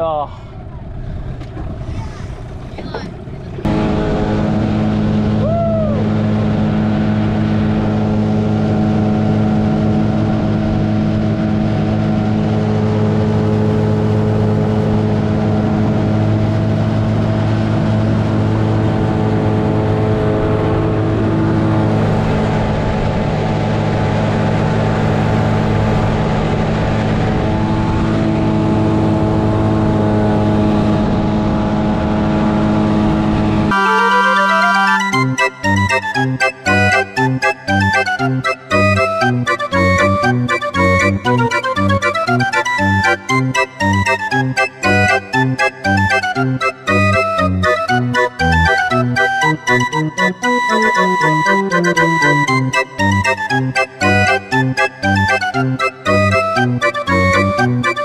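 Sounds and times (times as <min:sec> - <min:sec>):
outboard motor running: 0:00.6 - 0:33.8, 0:35.2 - 0:58.0.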